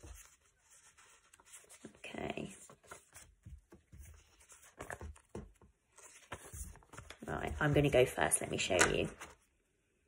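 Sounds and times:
paper flashcards rustling: 0:00.0 - 0:09.6.

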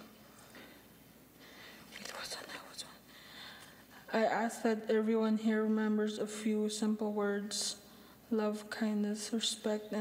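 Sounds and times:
person whispering close to microphone: 0:01.9 - 0:03.1.

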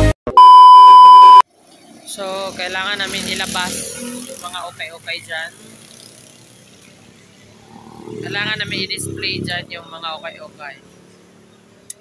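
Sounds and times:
high-pitched test-tone beep: 0:00.3 - 0:01.4
person talking: 0:08.2 - 0:10.8.

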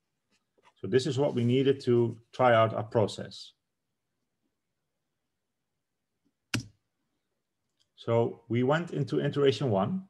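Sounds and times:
sharp computer click: 0:06.5 - 0:06.8.

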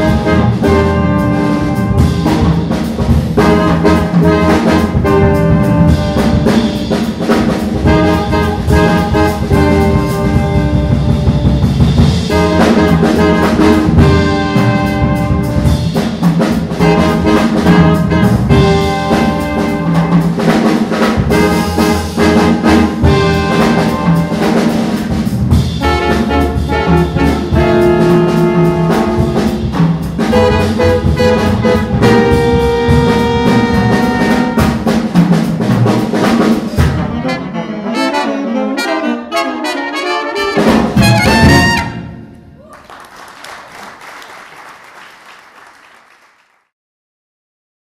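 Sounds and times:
tenor saxophone: 0:00.0 - 0:02.5, 0:07.8 - 0:11.7, 0:25.8 - 0:34.8, 0:36.8 - 0:42.6
trumpet: 0:00.0 - 0:35.0, 0:36.7 - 0:42.7
double bass: 0:00.0 - 0:38.4, 0:40.6 - 0:42.6
trombone: 0:00.0 - 0:42.3
drum kit: 0:00.0 - 0:42.7
audience applause: 0:42.6 - 0:46.7.

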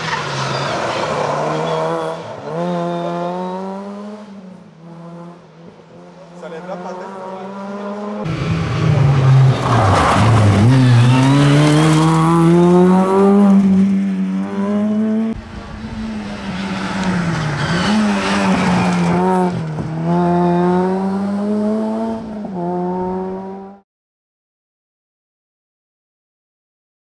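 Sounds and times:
rally car engine revving: 0:00.0 - 0:23.8.

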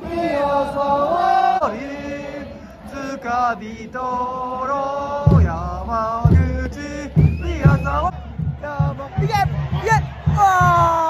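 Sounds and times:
football supporters chanting: 0:00.0 - 0:11.0.

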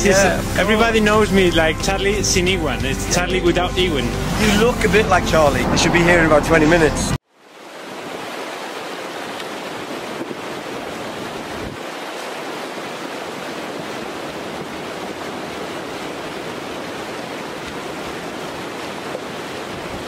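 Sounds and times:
river rushing over stones: 0:07.3 - 0:20.0.

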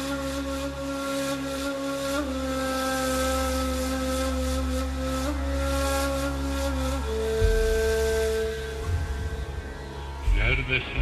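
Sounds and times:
low bass drone: 0:06.5 - 0:11.0.

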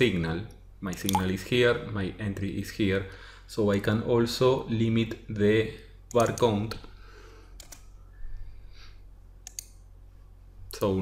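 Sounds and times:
computer keystrokes: 0:07.6 - 0:07.9, 0:09.4 - 0:09.8.

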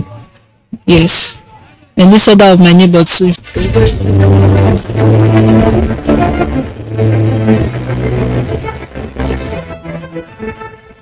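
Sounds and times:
theme music with deep bass line: 0:03.5 - 0:10.9.

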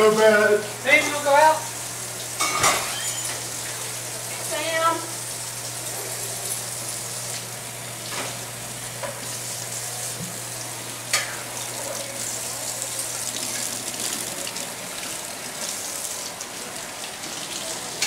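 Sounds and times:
food sizzling in a pot: 0:00.0 - 0:18.0
kitchen tap running: 0:00.0 - 0:18.0.

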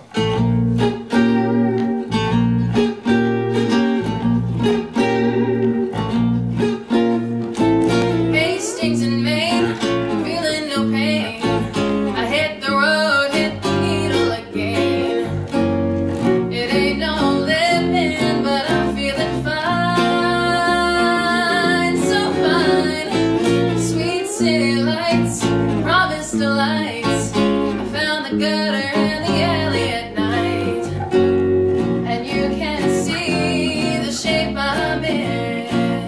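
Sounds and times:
electric bass guitar: 0:00.0 - 0:36.0
electric guitar: 0:00.0 - 0:36.0
woman singing: 0:07.9 - 0:31.2, 0:31.9 - 0:36.0.

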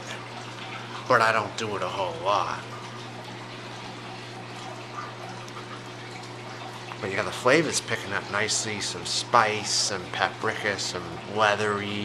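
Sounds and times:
low constant hum: 0:00.0 - 0:12.0.

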